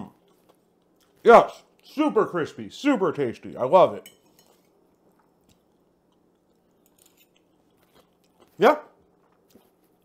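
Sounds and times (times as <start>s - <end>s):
chewing crispy food: 0.0s - 2.2s, 4.5s - 10.0s.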